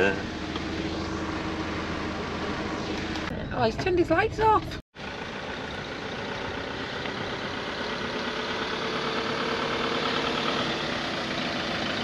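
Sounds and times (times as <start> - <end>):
engine hum: 0.0 - 12.0
road noise: 0.0 - 12.0.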